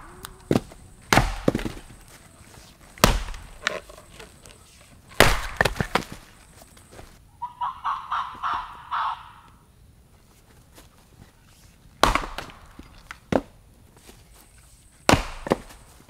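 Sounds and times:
axe splitting wood: 0.0 - 7.1, 12.0 - 13.6, 15.0 - 16.0.

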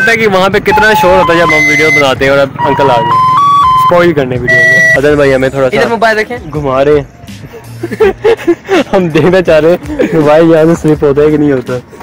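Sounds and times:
man talking: 0.0 - 7.0
background music: 0.0 - 12.0.

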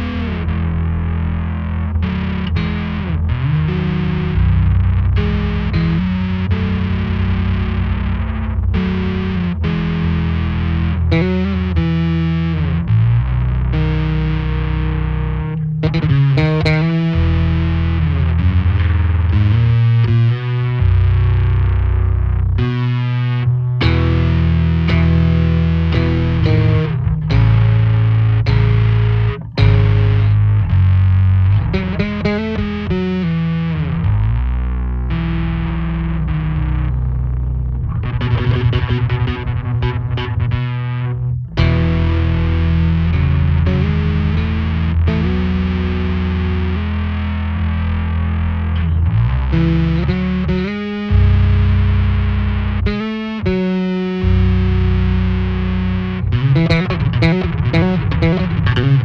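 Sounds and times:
electric bass guitar: 0.0 - 59.0.

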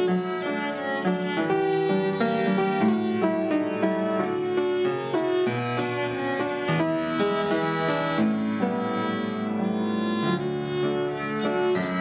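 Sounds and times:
bowed viola da gamba: 0.0 - 12.0
fortepiano playing: 0.0 - 12.0.

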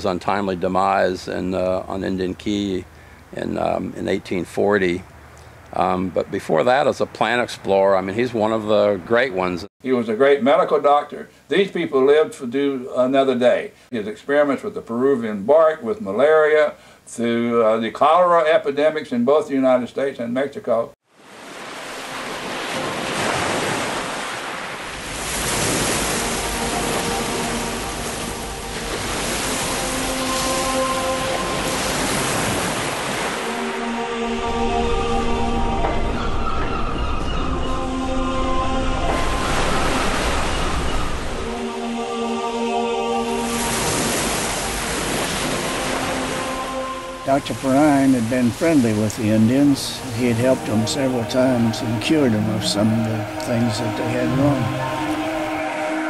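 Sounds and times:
wind: 0.0 - 56.0
ocean waves breaking: 21.1 - 56.0
soft held music notes: 46.0 - 56.0.

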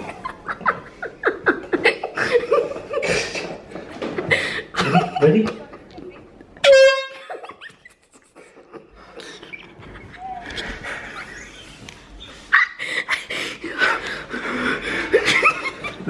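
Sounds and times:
people giggling: 0.0 - 16.0
loud horn blast: 6.6 - 7.2.

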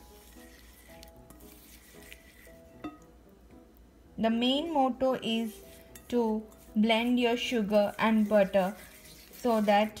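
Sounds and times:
whisk stirring in glass bowl: 0.0 - 3.0, 5.3 - 10.0
soft background music: 0.0 - 10.0.

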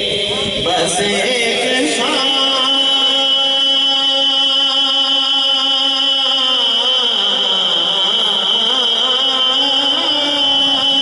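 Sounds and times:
man chanting devotional poem: 0.0 - 11.0.

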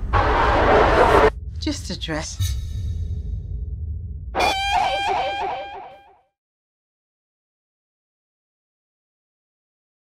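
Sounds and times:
low rumbling drone: 0.0 - 5.6
high wavering tone: 4.4 - 6.1.

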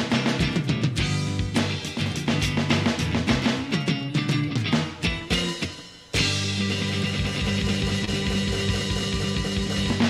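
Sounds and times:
drum kit: 0.0 - 10.0
electric guitar: 0.0 - 10.0
rock band playing: 0.0 - 10.0.

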